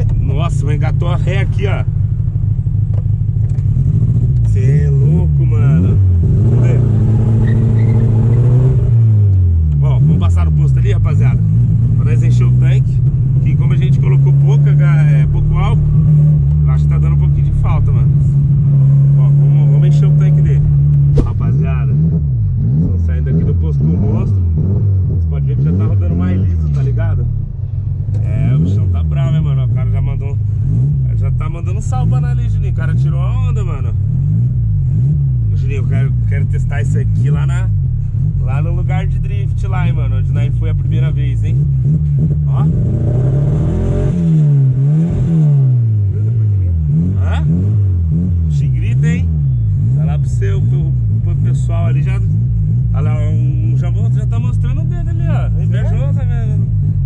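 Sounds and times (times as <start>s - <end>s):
car engine accelerating: 0.0s - 57.0s.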